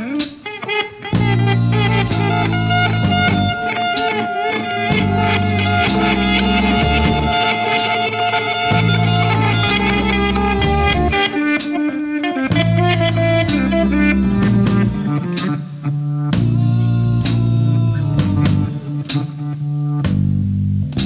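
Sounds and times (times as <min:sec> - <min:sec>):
electric guitar lead line: 0:00.0 - 0:20.5
bass guitar long notes: 0:00.9 - 0:21.0.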